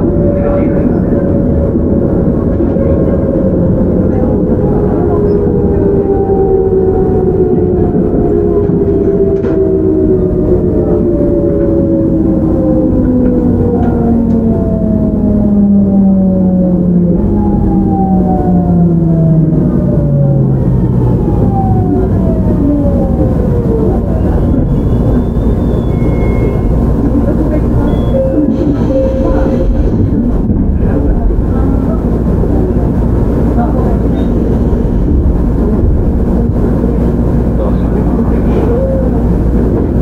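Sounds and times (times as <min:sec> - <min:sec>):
wheels rumbling on rails: 0:00.0 - 0:40.0.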